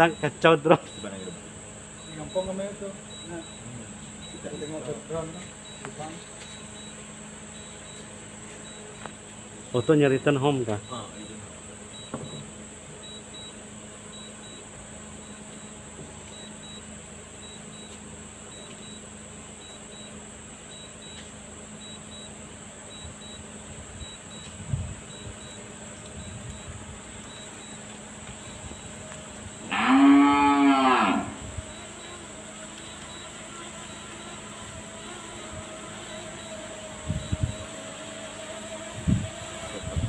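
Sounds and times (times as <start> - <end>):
faint steady background noise: 0.0 - 40.0
cow mooing: 29.6 - 31.5.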